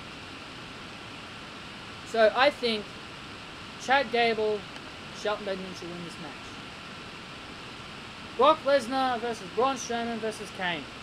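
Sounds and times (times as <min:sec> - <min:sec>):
faint high-pitched whine: 0:00.0 - 0:11.0
room noise hiss: 0:00.0 - 0:11.0.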